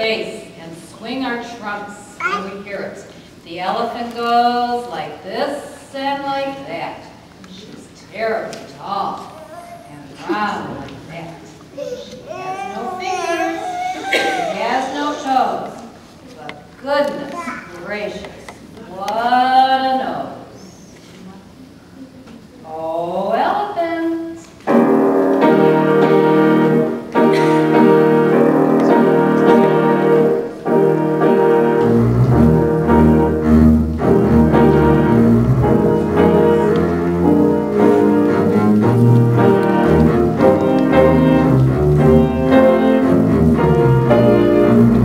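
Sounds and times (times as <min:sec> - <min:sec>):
piano chords: 0:24.0 - 0:45.0
double bass melody: 0:24.7 - 0:45.0.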